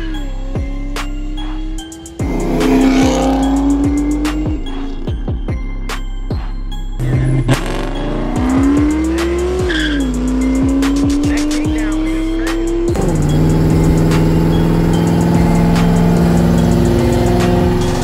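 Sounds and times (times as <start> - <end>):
car engine accelerating: 0.0 - 6.2, 6.9 - 18.0.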